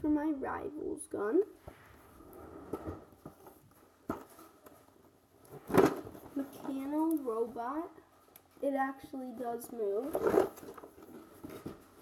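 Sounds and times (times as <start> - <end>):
handling noises: 2.0 - 7.6.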